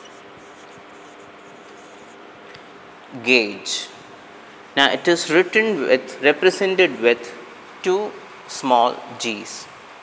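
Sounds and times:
marker writing on whiteboard: 0.0 - 2.6
faint steady hum: 0.0 - 10.0.

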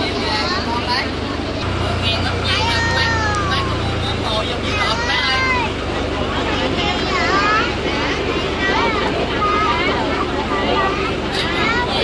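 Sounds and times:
boat engine running: 0.0 - 12.0
passenger chatter: 0.0 - 12.0.

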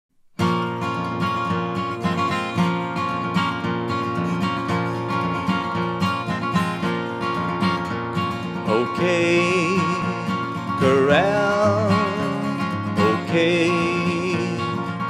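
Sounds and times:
acoustic guitar picked and strummed: 0.1 - 15.0.

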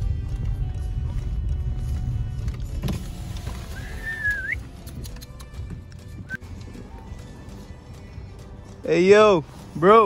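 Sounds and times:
low car rumble: 0.0 - 9.7
sharp click: 4.8 - 5.6.

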